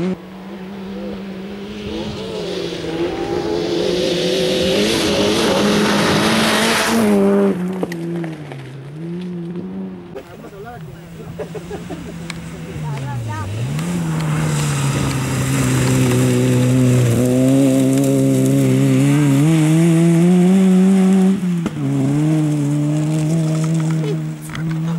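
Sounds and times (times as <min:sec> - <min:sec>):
rally car engine running hard: 0:11.4 - 0:24.9.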